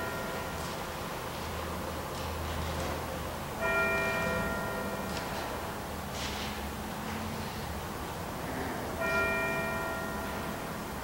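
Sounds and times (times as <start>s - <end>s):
church bell ringing: 0.0s - 1.2s, 3.6s - 5.8s, 9.0s - 11.0s.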